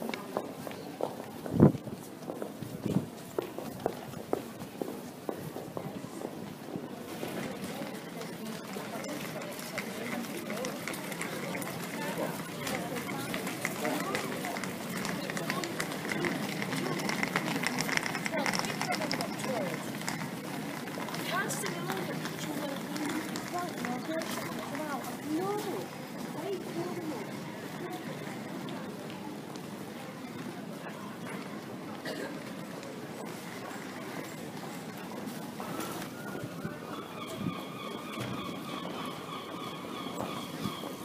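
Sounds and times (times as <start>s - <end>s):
voices of people in street: 0.0s - 41.0s.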